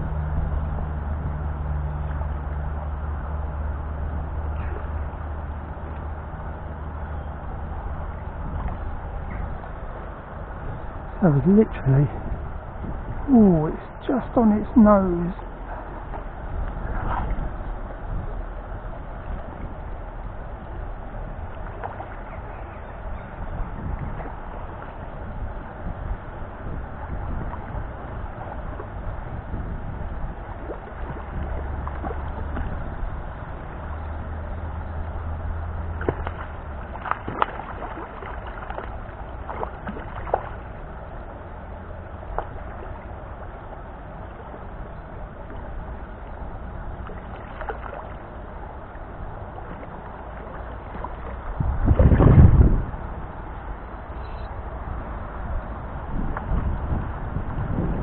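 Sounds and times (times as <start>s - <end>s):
wind rumble on microphone: 0.0s - 58.0s
fish splashing at surface: 36.0s - 40.6s.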